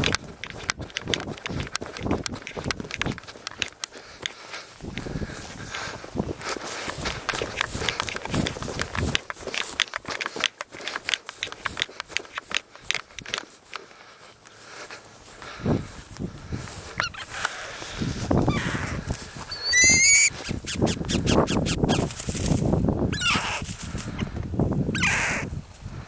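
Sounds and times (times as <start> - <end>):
footsteps in dry grass: 0.0 - 26.0
harsh animal squawk: 17.0 - 17.4, 18.4 - 22.1, 23.1 - 23.6, 24.9 - 25.5.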